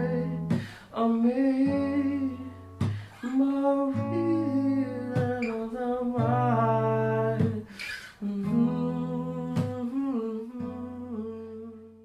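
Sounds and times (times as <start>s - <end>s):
guitar: 0.0s - 12.0s
breath: 0.6s - 0.9s, 2.8s - 3.2s, 7.7s - 8.2s
person humming: 3.2s - 12.0s.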